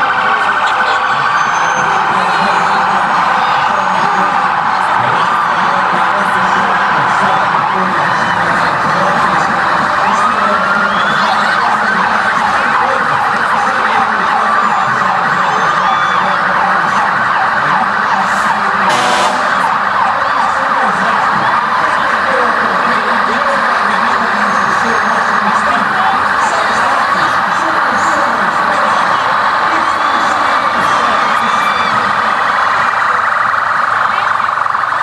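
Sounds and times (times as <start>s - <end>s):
police sirens wailing: 0.0s - 35.0s
burst of noise: 18.3s - 20.1s.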